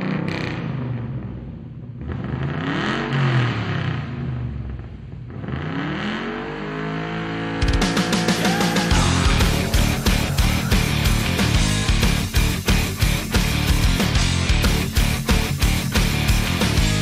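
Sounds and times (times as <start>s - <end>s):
loud rock music: 7.6s - 17.0s.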